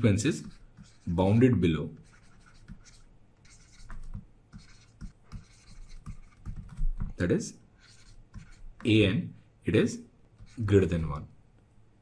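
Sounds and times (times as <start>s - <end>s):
stylus scratching on tablet: 0.0s - 9.0s, 10.4s - 11.1s.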